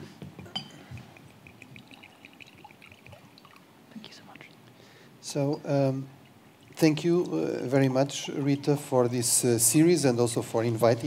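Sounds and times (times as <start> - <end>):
water pouring into glass: 0.6 - 4.2, 5.6 - 9.6.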